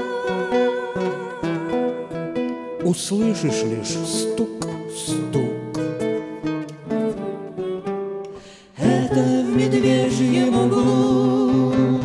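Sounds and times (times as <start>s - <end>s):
acoustic guitars plucking slowly: 0.0s - 12.0s.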